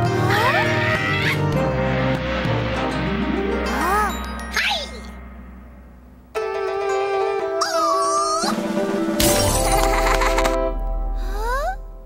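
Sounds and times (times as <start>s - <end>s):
cartoon background music: 0.0s - 5.3s, 6.3s - 12.0s
low rumble: 1.8s - 6.9s.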